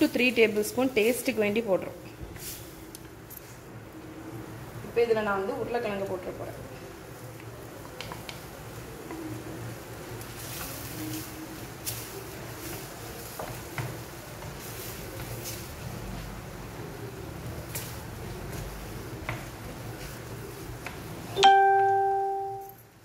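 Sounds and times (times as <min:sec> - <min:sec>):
wooden spatula scraping a pan: 0:10.2 - 0:16.4
low steady hum: 0:21.3 - 0:22.9.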